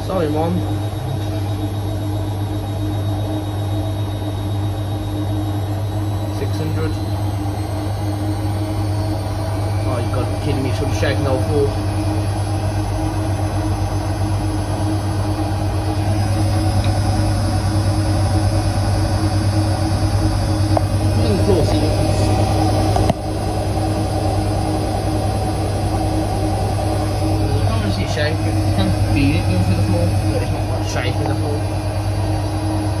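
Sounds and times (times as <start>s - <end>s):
washing machine spinning: 0.0s - 33.0s.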